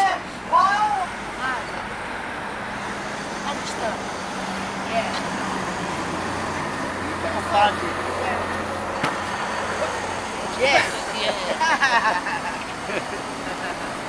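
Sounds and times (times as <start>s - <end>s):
passing vehicles rumble: 0.0s - 14.0s
voices: 0.0s - 14.0s.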